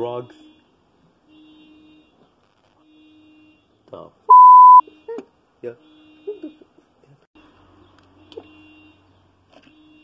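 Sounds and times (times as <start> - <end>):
electronic beep: 4.3 - 4.8.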